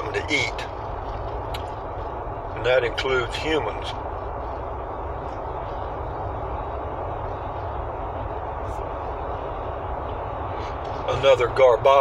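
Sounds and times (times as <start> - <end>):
vehicle cabin rumble: 0.0 - 12.0.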